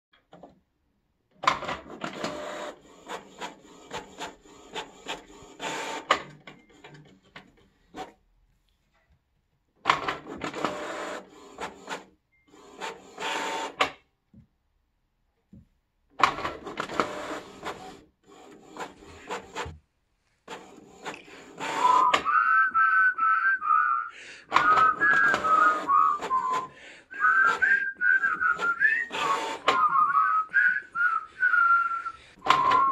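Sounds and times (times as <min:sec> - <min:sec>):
printer whirring: 0:01.4 - 0:08.2, 0:09.8 - 0:14.0, 0:16.1 - 0:19.8, 0:20.4 - 0:23.7, 0:24.4 - 0:32.9
printer mechanical strokes: 0:01.5 - 0:08.2, 0:09.9 - 0:13.9, 0:16.2 - 0:19.8, 0:20.4 - 0:22.3, 0:24.4 - 0:30.5, 0:31.7 - 0:32.9
person whistling a tune: 0:21.8 - 0:32.9.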